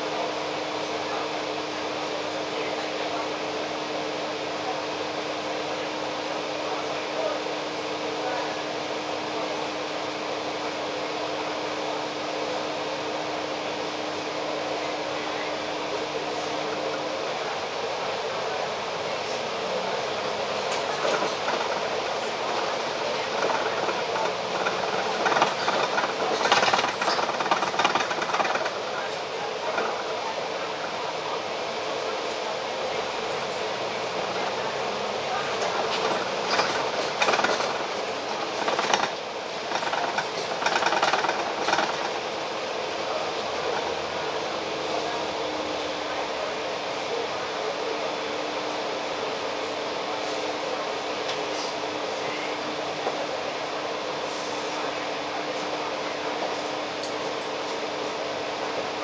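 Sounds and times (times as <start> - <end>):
bus engine and road hum: 0.0 - 59.0
rattling and clatter: 20.6 - 30.1, 35.5 - 42.3.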